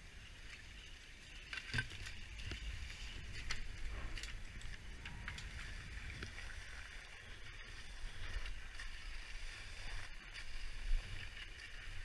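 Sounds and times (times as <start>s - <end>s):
wind rumble on microphone: 1.7s - 12.0s.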